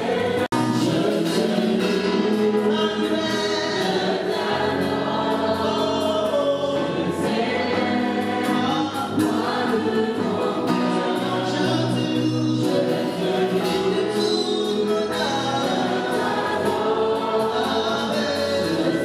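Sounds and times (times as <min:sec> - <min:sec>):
conga drums: 0:00.0 - 0:19.0
group of voices singing: 0:00.0 - 0:19.0
man singing into microphone: 0:00.4 - 0:07.8, 0:08.4 - 0:19.0.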